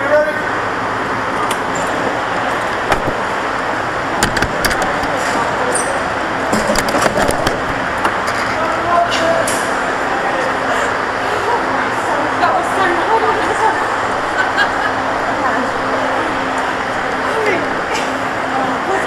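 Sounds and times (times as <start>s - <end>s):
garage background din: 0.0s - 19.0s
knocks and clicks on kart: 4.2s - 5.2s, 6.5s - 8.5s.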